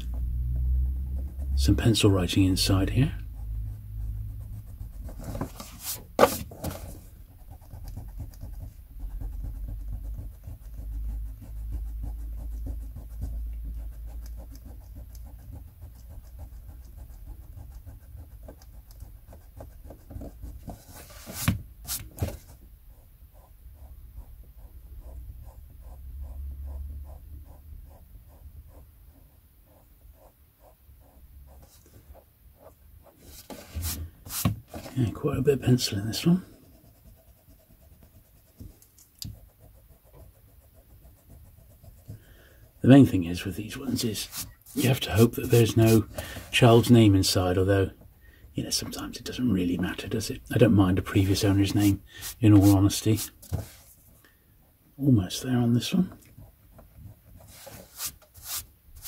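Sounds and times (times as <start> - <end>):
book handling knocks: 5.2 - 7.0
eraser scrubbing on paper: 7.4 - 19.9, 43.3 - 47.6, 51.2 - 54.0, 57.4 - 59.0.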